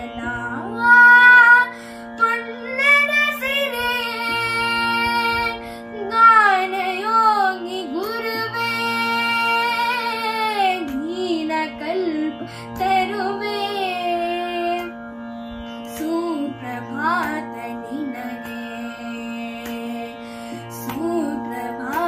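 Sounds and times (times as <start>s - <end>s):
boy singing: 0.0s - 14.9s, 16.0s - 22.0s
steady drone: 0.0s - 22.0s.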